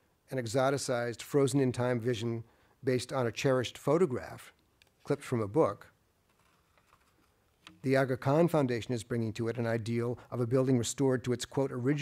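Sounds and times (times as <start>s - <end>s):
man speaking: 0.3s - 6.0s, 7.8s - 12.0s.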